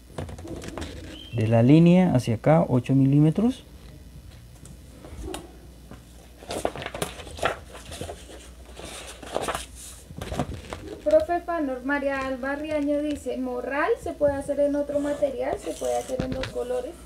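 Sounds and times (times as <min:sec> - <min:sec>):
cardstock rustling and scraping: 0:00.2 - 0:01.3, 0:06.3 - 0:11.2, 0:14.8 - 0:16.9.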